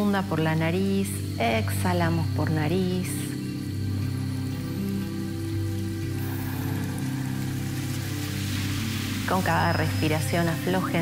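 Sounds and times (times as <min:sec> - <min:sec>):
rain-like hiss: 0:00.0 - 0:11.0
soft music with low held notes: 0:00.0 - 0:11.0.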